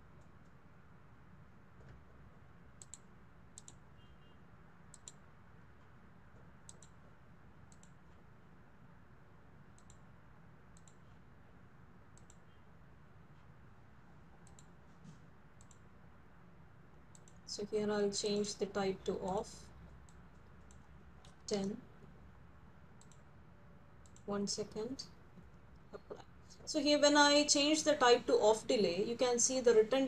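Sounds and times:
low room hum: 0.0 - 30.0
faint mouse clicks: 2.8 - 3.8, 4.9 - 5.2, 6.3 - 7.0, 7.7 - 8.2, 9.7 - 10.0, 10.7 - 11.2, 12.1 - 12.5, 14.3 - 14.8, 15.6 - 15.9, 17.1 - 17.4, 23.0 - 23.3, 24.0 - 24.3.

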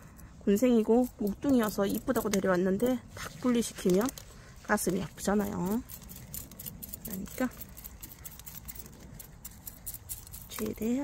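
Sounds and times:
tweezers scratching roots: 0.1 - 11.0.

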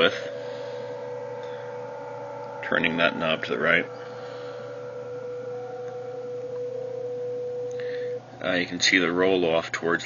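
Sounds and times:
faint higher tone: 0.0 - 10.0
steady pure tone: 0.0 - 10.0.

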